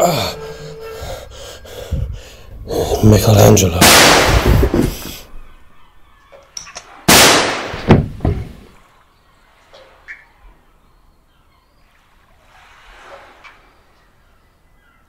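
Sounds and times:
loud bang: 3.8 - 5.0
faint scattered clicks: 6.2 - 6.9
knocks: 7.7 - 8.6.

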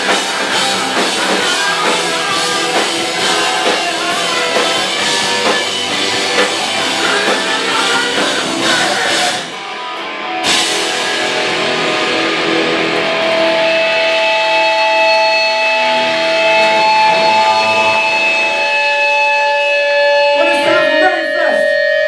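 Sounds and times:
distorted electric guitars: 0.0 - 22.0
guitar feedback tones: 0.0 - 22.0.

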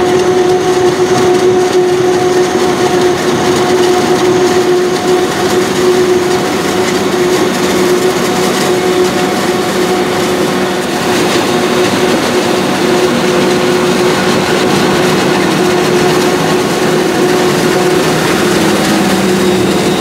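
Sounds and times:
forage harvester engine droning: 0.0 - 20.0
tractor engine: 0.0 - 20.0.

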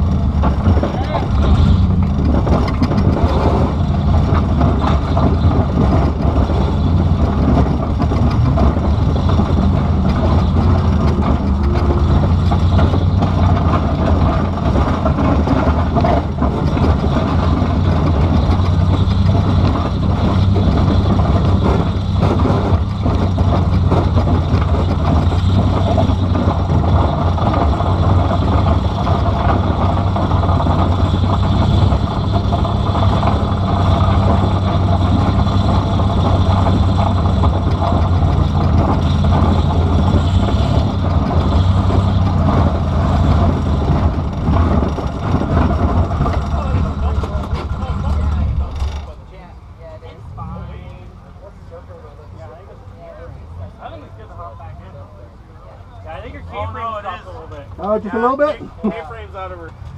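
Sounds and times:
car engine running: 0.0 - 59.9.

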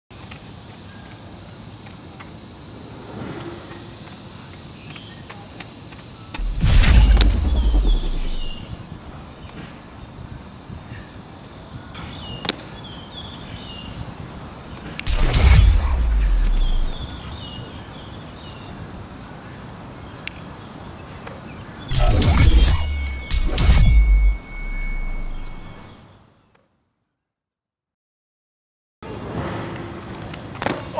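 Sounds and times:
sharp click: 6.3 - 8.8, 15.0 - 17.4, 21.9 - 25.9
deep boom with hissing burst: 6.4 - 9.0, 15.1 - 17.4
thin high ringing tone: 21.9 - 26.2.

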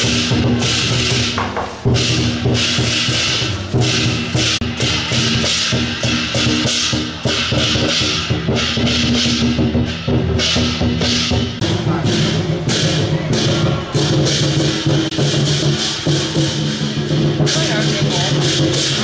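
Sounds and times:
clashing cymbals: 0.0 - 19.0
drums: 0.0 - 19.0.

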